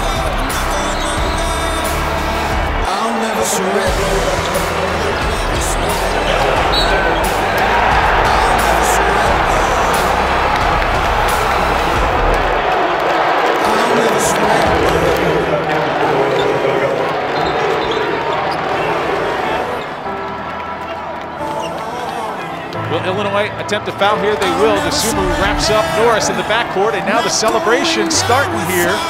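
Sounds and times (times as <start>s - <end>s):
sung rock music: 0.0s - 12.7s, 19.6s - 29.0s.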